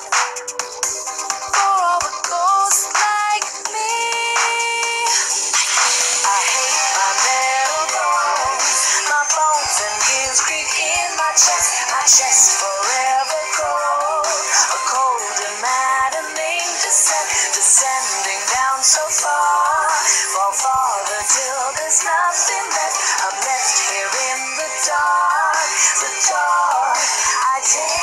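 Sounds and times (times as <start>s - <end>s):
instrumental backing: 0.0s - 28.0s
person singing: 0.0s - 28.0s.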